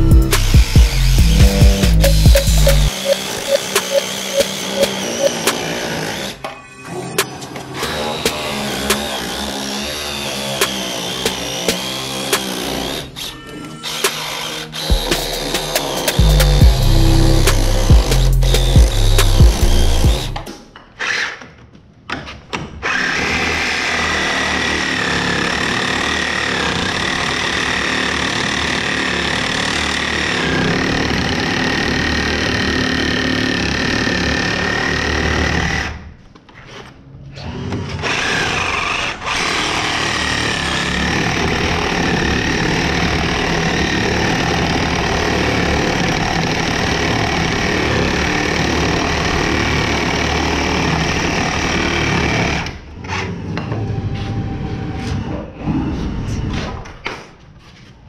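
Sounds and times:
power tool motor whine: 0.0s - 6.4s, 13.8s - 20.5s.

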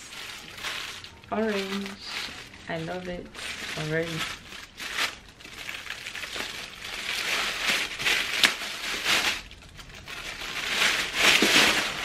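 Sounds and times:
plastic bag crinkling and rustling: 0.0s - 12.0s.

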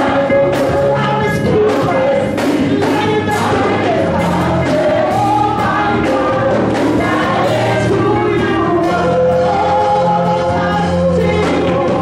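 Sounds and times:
voices singing along: 0.0s - 12.0s
woman singing into microphone: 0.0s - 12.0s.

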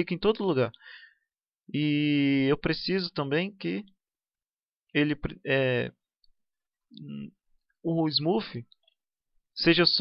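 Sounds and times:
man speaking: 1.7s - 4.0s, 4.9s - 6.1s, 6.9s - 8.8s, 9.6s - 10.0s.

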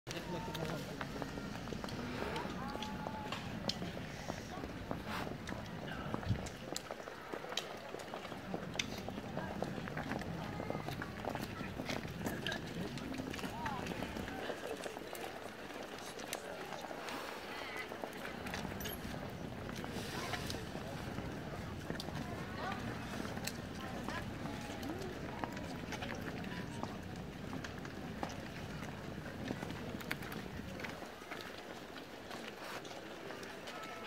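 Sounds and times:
indistinct voices talking: 0.1s - 6.4s
footsteps on stone paving: 0.1s - 34.0s
voices murmuring: 0.1s - 34.0s.

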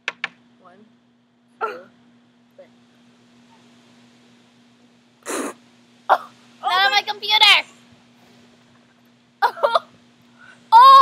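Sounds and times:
girls laughing: 9.4s - 9.9s
girls groaning in disgust: 10.7s - 11.0s.

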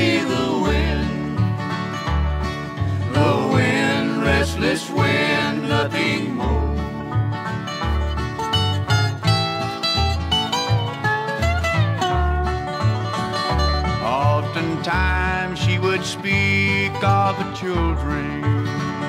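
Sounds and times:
banjo picking: 0.0s - 19.0s
bass notes: 0.0s - 19.0s
guitar picking: 0.0s - 19.0s.

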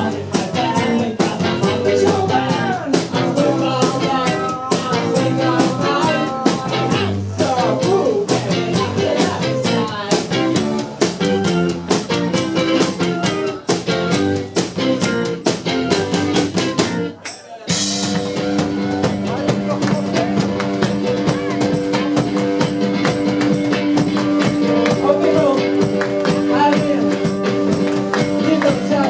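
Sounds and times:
drum strokes: 0.0s - 29.0s
electric guitar: 0.0s - 29.0s
live garage rock band: 0.0s - 29.0s.

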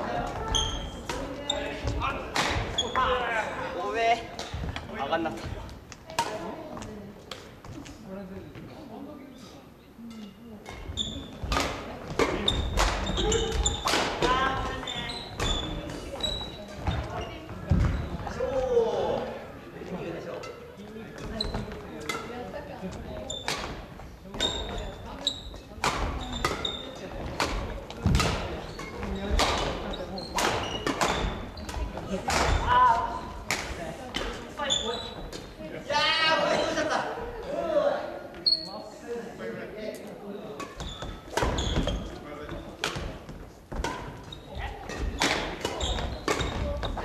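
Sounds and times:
shoes squeaking on wooden floor: 0.0s - 3.4s, 10.7s - 18.5s, 20.6s - 33.4s, 34.2s - 35.6s, 38.3s - 38.9s, 40.6s - 47.0s
players' voices: 0.0s - 47.0s
rackets striking shuttlecock: 11.4s - 14.7s, 25.8s - 32.7s, 43.7s - 47.0s.

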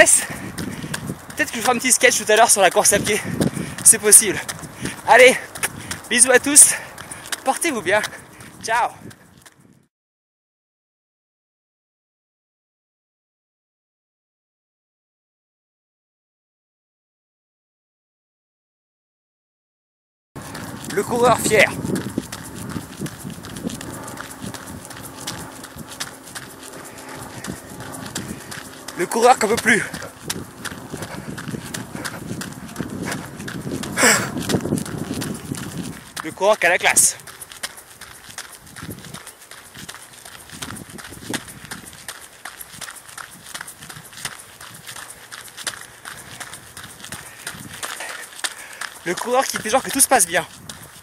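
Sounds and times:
running footsteps: 0.0s - 9.8s, 20.4s - 51.0s.

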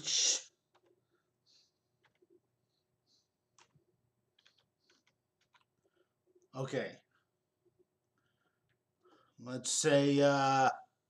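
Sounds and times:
faint keyboard typing: 0.7s - 1.2s, 2.0s - 2.5s, 3.2s - 6.5s.

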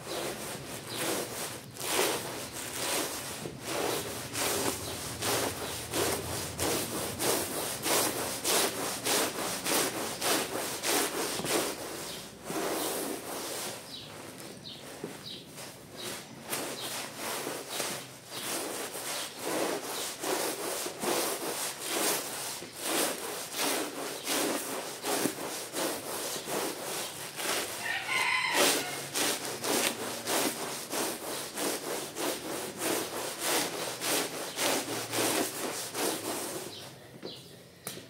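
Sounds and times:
push broom scrubbing wet rug: 0.0s - 37.0s.

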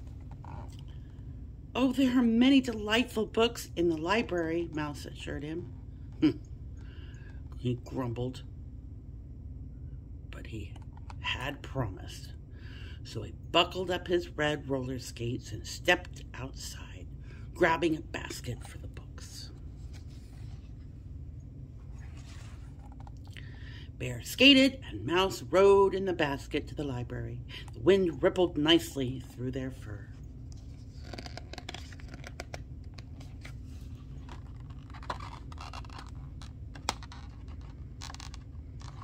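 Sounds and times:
steady low hum: 0.0s - 39.0s
book page turning: 19.6s - 20.9s, 21.8s - 23.2s, 30.5s - 39.0s.

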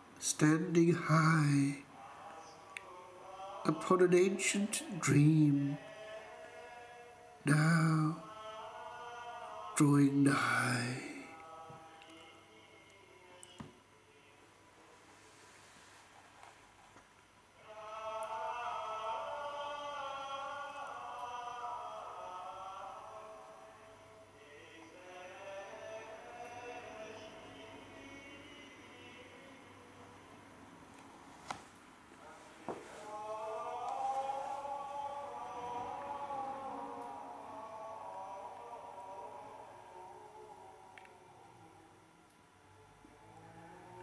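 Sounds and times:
male choir chanting: 0.4s - 14.4s, 17.6s - 30.3s, 32.2s - 42.0s, 42.8s - 44.0s.

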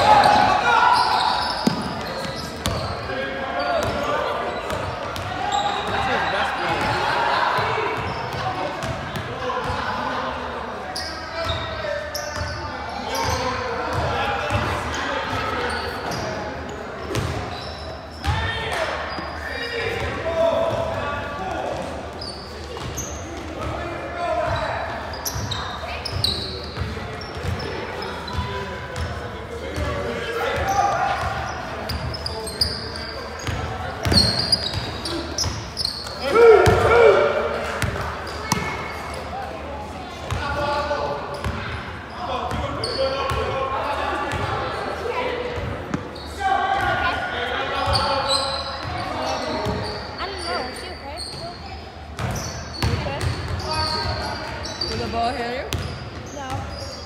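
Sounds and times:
sneakers squeaking: 0.0s - 10.0s, 10.8s - 57.0s
players calling out: 0.0s - 10.2s, 11.0s - 39.4s.

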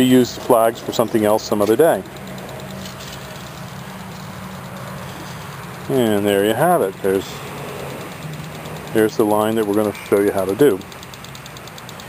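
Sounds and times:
engine humming steadily: 0.0s - 12.0s.

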